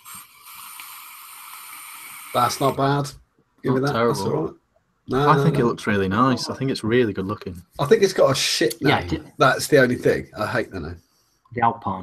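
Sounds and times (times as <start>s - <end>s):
vape draw airy hiss: 0.0s - 3.0s.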